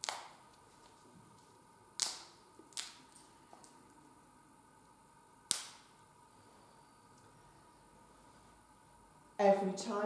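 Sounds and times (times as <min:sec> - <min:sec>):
wafer snapping: 0:00.0 - 0:00.6.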